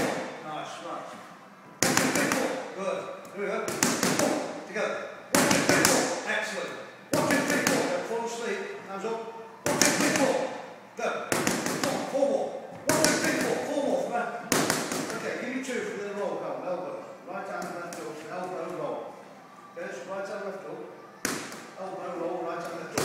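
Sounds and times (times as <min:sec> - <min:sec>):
boxing gloves slapping mitts: 0:01.8 - 0:02.6, 0:03.7 - 0:04.5, 0:05.4 - 0:06.2, 0:07.2 - 0:08.0, 0:09.7 - 0:10.5, 0:11.3 - 0:12.2, 0:12.9 - 0:13.7, 0:14.5 - 0:15.3, 0:21.2 - 0:21.7.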